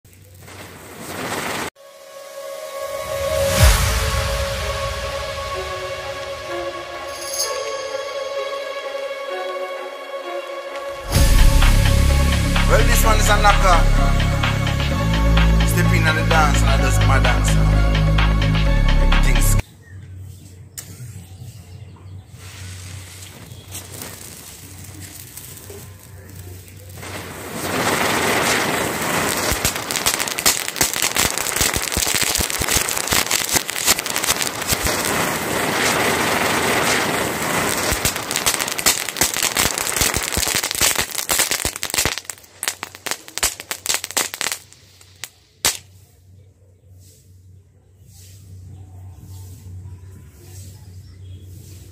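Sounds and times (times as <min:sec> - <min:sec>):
fireworks popping and banging: 0:00.0 - 0:01.8, 0:22.5 - 0:45.9
fireworks hissing and crackling: 0:00.0 - 0:02.1, 0:03.1 - 0:07.8, 0:10.7 - 0:18.4, 0:22.3 - 0:46.2, 0:51.5 - 0:51.9.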